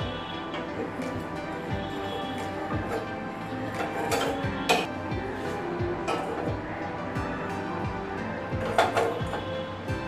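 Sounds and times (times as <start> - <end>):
background music with beat: 0.0 - 10.0
metal tongs clinking on clay cup: 3.7 - 4.9, 8.6 - 9.4.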